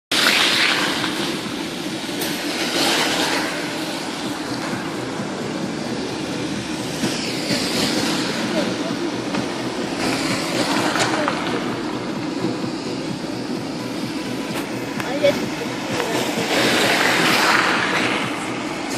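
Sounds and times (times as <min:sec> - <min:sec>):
tyres rumbling on wet road: 0:00.1 - 0:18.9.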